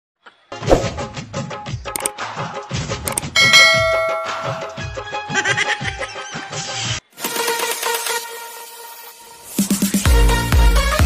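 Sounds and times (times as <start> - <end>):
background music with a beat: 0.9 - 5.6, 9.5 - 11.0
sharp clicks: 3.1 - 3.4
bell-like ding: 3.2 - 5.0.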